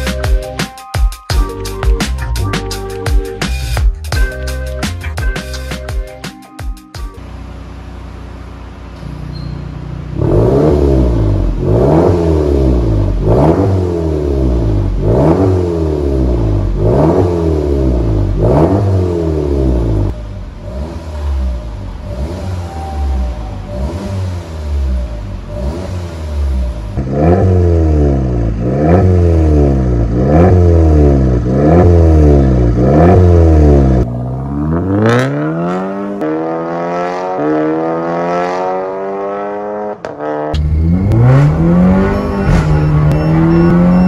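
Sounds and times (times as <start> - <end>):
car engine revving: 7.2 - 44.0.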